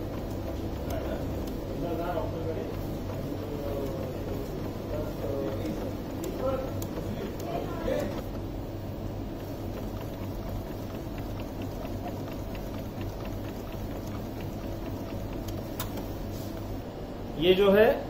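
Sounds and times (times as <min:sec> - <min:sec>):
faint ticks of paper feeding: 0:00.0 - 0:08.4, 0:09.3 - 0:16.7
printer click: 0:00.0 - 0:08.5, 0:09.3 - 0:16.8
printer humming: 0:00.0 - 0:18.0.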